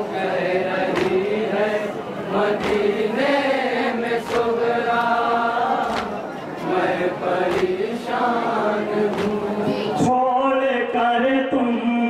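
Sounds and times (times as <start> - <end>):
men chanting in unison: 0.0 - 12.0
chest-beating slaps: 0.9 - 1.4, 2.4 - 5.2, 5.8 - 6.8, 7.4 - 8.2, 9.1 - 9.5.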